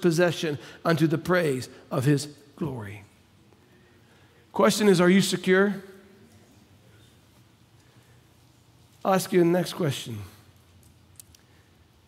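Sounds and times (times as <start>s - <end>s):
man speaking: 0.0s - 3.3s, 4.4s - 6.2s, 9.0s - 10.5s.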